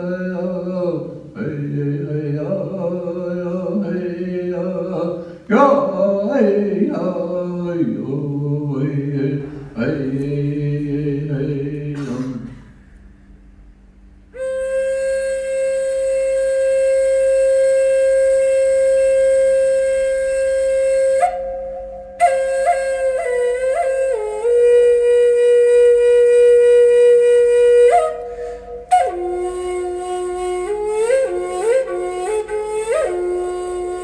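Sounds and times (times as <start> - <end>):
solo flute melody: 14.3 - 34.0.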